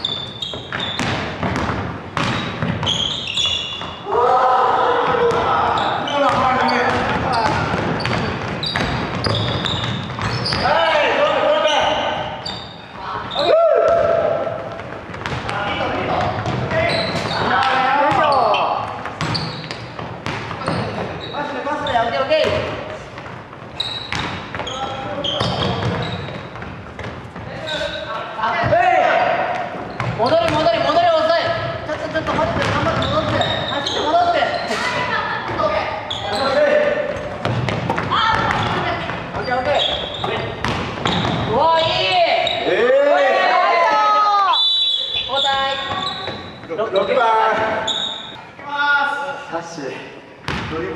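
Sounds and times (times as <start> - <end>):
basketball bouncing: 0.0 - 4.0, 5.0 - 10.8, 13.2 - 21.2, 22.3 - 27.5, 29.4 - 35.8, 37.1 - 42.3, 50.4 - 50.8
sneaker squeaks on gym floor: 0.0 - 4.1, 5.3 - 14.0, 15.2 - 28.2, 29.6 - 42.8, 44.5 - 48.6.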